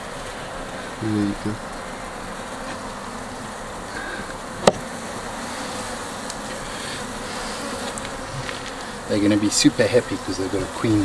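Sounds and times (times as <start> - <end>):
honeybees humming: 0.0 - 11.0
sharp knock: 4.6 - 4.9.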